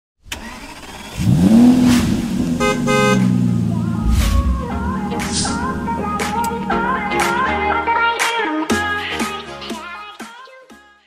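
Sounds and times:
cartoon engine revving: 0:01.2 - 0:06.8
car horn beeps: 0:02.5 - 0:03.5.

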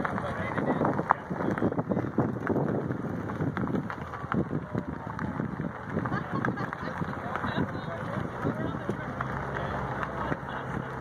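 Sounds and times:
wind on microphone: 0:00.0 - 0:09.1
car engines rolling past slowly: 0:00.0 - 0:11.0.

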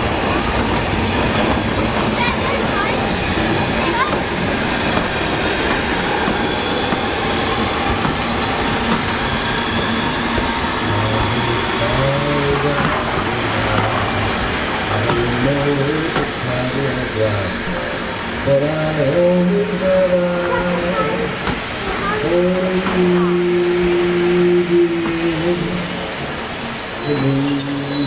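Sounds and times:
steam train rumbling: 0:00.0 - 0:28.0
man singing slow song: 0:18.4 - 0:21.4, 0:22.0 - 0:26.0.

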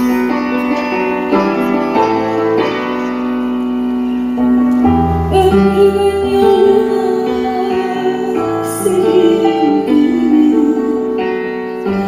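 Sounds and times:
piano chords: 0:00.0 - 0:12.0
woman singing: 0:05.3 - 0:12.0.

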